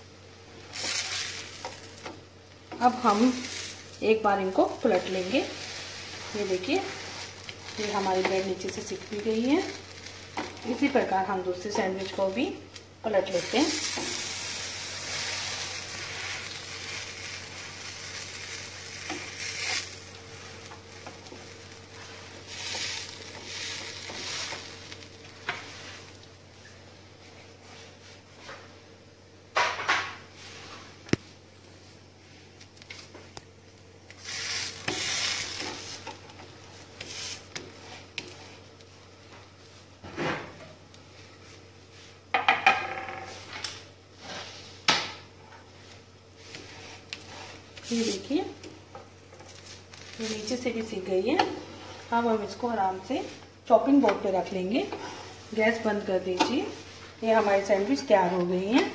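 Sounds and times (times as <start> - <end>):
butter sizzling in a pan: 0.1 - 27.4, 32.7 - 40.0, 43.9 - 58.9
wooden spatula scraping a pan: 2.7 - 12.4, 13.2 - 28.6, 34.2 - 38.8, 44.2 - 44.8, 45.4 - 53.4, 54.0 - 58.9.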